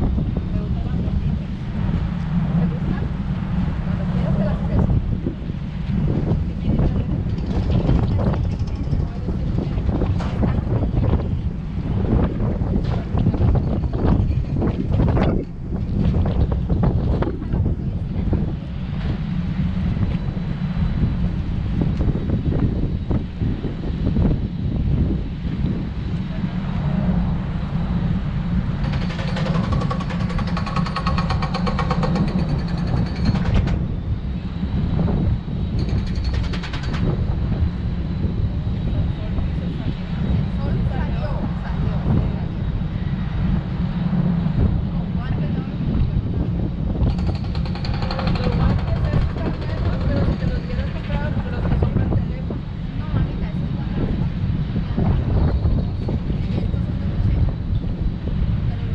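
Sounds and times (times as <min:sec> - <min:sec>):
wind buffeting microphone: 0:00.0 - 0:58.9
indistinct voices: 0:47.2 - 0:54.3.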